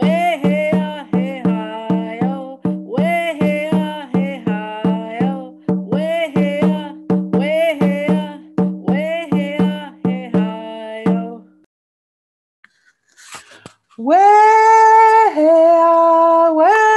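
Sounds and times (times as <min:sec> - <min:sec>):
high voice singing: 0:00.0 - 0:11.5
hand drum beating: 0:00.0 - 0:11.6.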